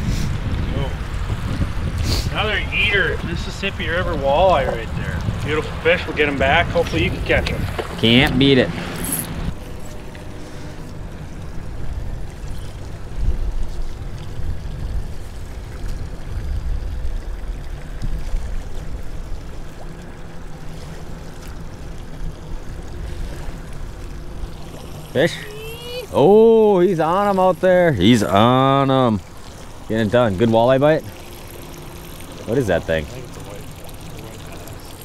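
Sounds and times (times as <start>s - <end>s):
wind buffeting microphone: 0.0s - 9.6s, 11.5s - 19.7s
water lapping against boat hull: 0.0s - 35.0s.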